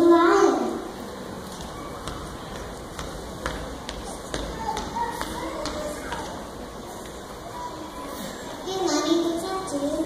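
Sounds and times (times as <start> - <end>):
child's footsteps on stage floor: 1.4 - 7.2.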